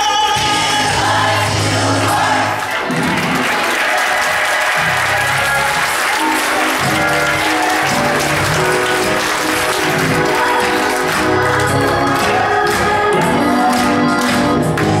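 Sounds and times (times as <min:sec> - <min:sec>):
band playing: 0:00.0 - 0:15.0
congregation applauding: 0:00.4 - 0:15.0.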